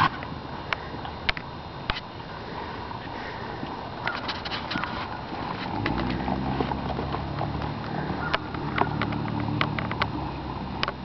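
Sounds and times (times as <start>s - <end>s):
steady low hum: 0.0s - 11.0s
horse hoofbeats on dirt: 3.6s - 11.0s.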